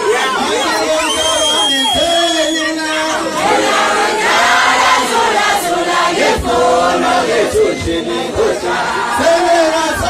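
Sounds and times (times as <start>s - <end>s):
crowd singing and chanting: 0.0s - 10.0s.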